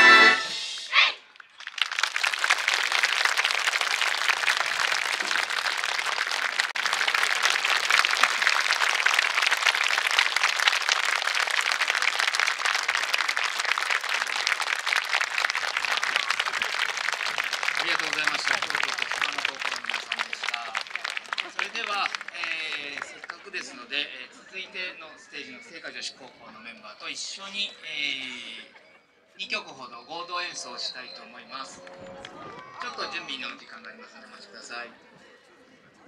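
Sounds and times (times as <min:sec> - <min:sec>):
audience applauding: 0:01.4 - 0:23.8.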